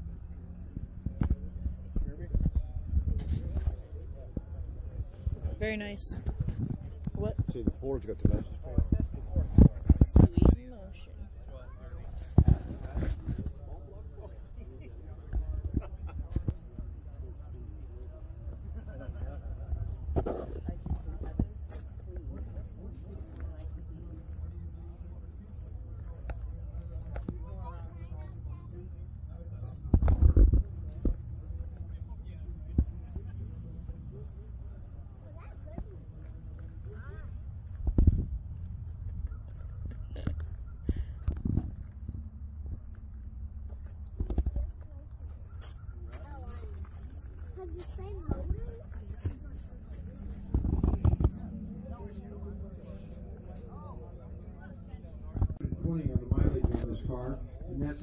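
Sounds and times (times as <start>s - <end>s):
wind buffeting microphone: 0.0s - 11.1s, 35.5s - 44.8s, 47.7s - 58.0s
distant people talking: 0.0s - 58.0s
steady low rumble: 0.0s - 58.0s.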